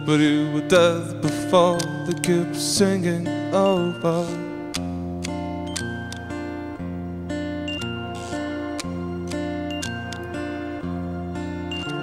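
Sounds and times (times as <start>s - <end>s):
acoustic guitar notes: 0.0s - 12.0s
sharp click: 1.3s - 2.2s, 4.7s - 6.3s.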